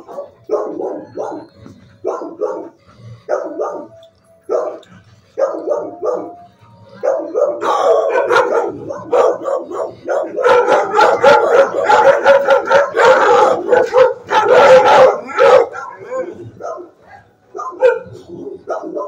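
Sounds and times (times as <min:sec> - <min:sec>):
dogs barking and howling: 0:00.0 - 0:19.0.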